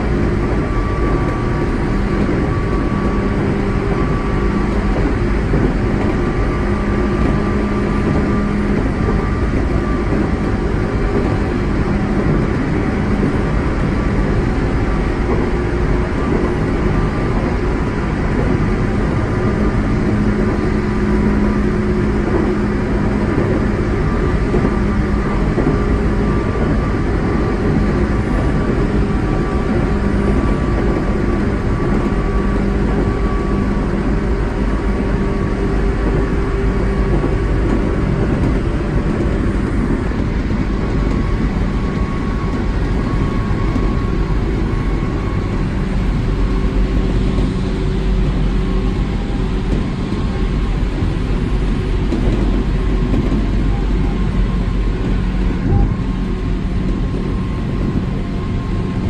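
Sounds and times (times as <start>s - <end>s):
constant low hum: 0.0s - 59.0s
train wheels rumbling on rail: 0.0s - 59.0s.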